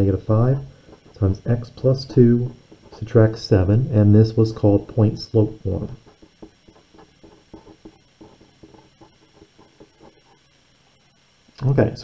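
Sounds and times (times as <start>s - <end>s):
felt-tip pen scratching on paper: 0.6s - 3.5s, 5.5s - 10.5s.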